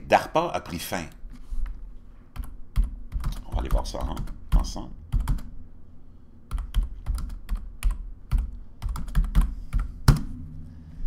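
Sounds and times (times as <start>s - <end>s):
computer keyboard typing: 2.3s - 5.5s, 6.5s - 10.2s.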